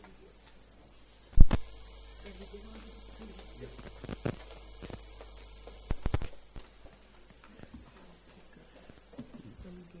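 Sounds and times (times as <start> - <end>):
electrical mains hum and hiss: 0.0 - 10.0.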